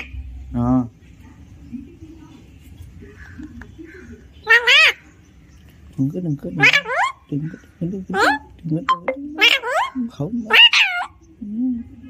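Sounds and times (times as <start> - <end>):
parakeet saying mama: 8.2 - 11.1.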